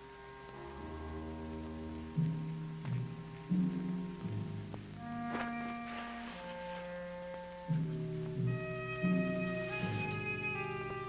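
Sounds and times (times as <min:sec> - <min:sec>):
dramatic music with held notes: 0:00.1 - 0:11.0.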